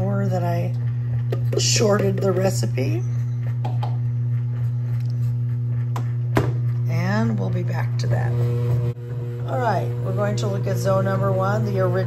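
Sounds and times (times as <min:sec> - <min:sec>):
bread machine motor humming: 0:00.0 - 0:12.0.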